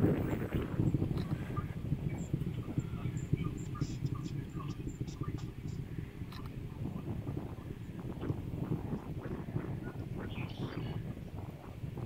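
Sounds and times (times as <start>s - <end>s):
distant rocket engine rumble: 0.0s - 12.0s.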